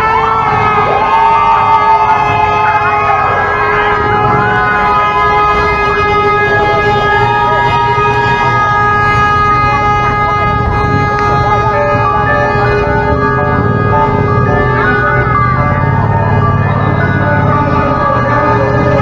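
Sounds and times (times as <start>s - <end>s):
crowd noise: 0.0s - 19.0s
siren: 0.0s - 19.0s.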